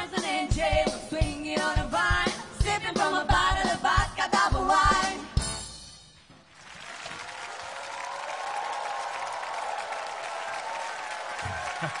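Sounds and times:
audience applauding and cheering: 6.4 - 12.0.

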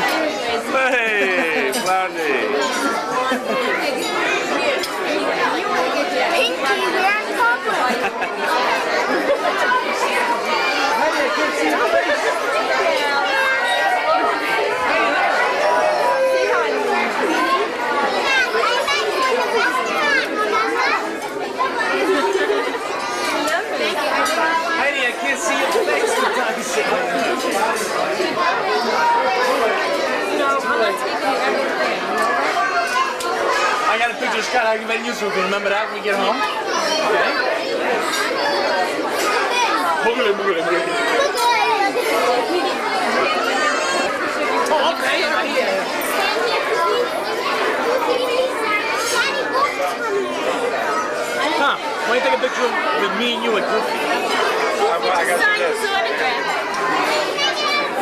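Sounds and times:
crowd chattering: 0.0 - 58.0.

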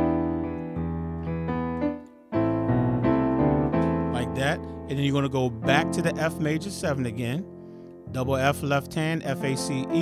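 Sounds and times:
digital piano chords: 0.0 - 10.0.

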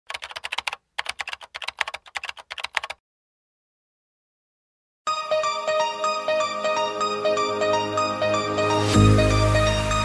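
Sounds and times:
keyboard typing: 0.1 - 3.0.

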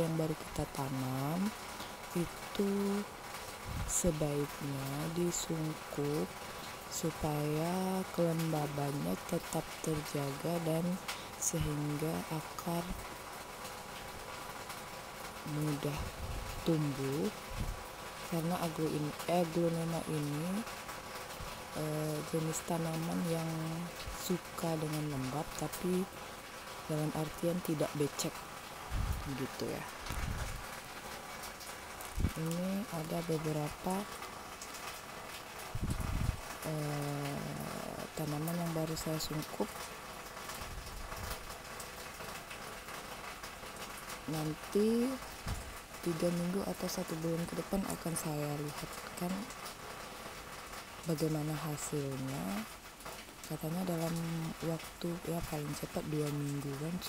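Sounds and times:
person speaking: 0.0 - 1.5, 2.2 - 3.1, 7.0 - 13.0, 15.5 - 17.3, 18.3 - 20.6, 21.8 - 26.1, 26.9 - 28.4, 29.2 - 30.0, 32.2 - 34.1, 44.3 - 45.2, 46.0 - 49.5.

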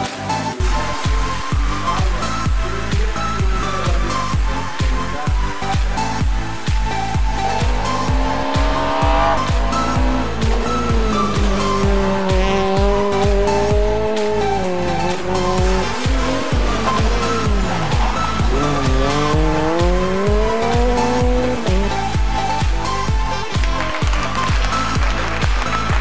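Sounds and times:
dance music with steady beat: 0.6 - 26.0
rally car engine revving: 0.6 - 26.0.

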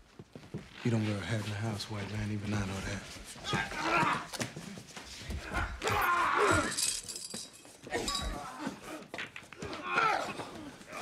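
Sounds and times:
men grunting and crying out: 3.4 - 4.5, 5.3 - 7.2, 7.8 - 11.0.

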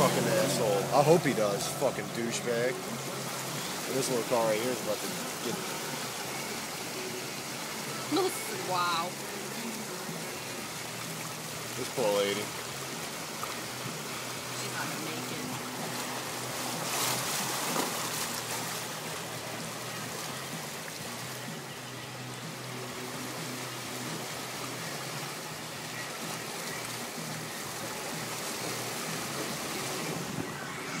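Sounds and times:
floodwater rushing around vehicle: 0.0 - 31.0
water splashing: 0.0 - 31.0.

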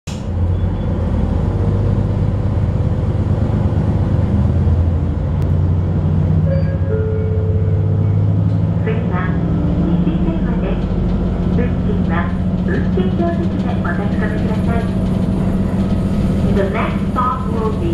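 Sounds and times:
diesel railcar engine drone: 0.0 - 17.9.

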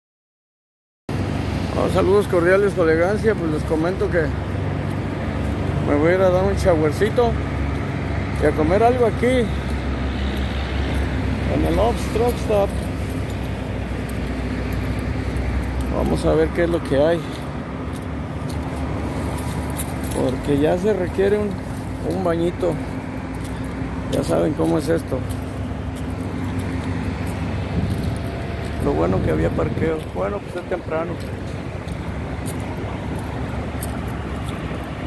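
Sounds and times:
truck engine rumbling past: 1.1 - 35.0.

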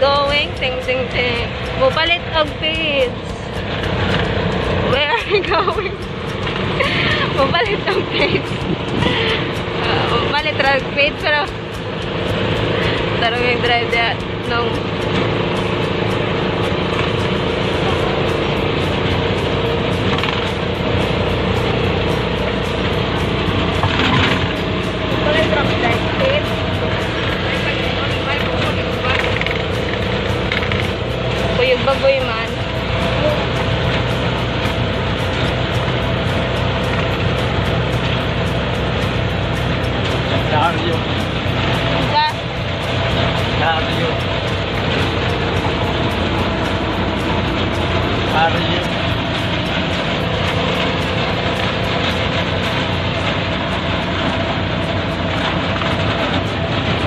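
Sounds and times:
motorcycle engine running: 0.0 - 57.0
road noise: 0.0 - 57.0.

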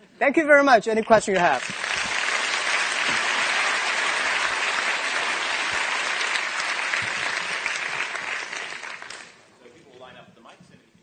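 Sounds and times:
audience applauding: 1.5 - 9.4.

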